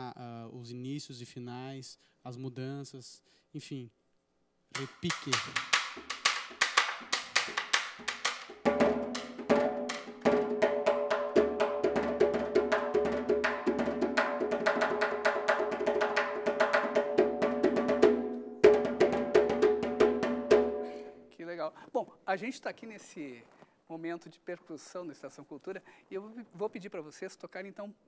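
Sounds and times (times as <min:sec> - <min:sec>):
stick clicks on drum shell: 0:04.8 - 0:08.6
drum head strokes: 0:04.8 - 0:10.7.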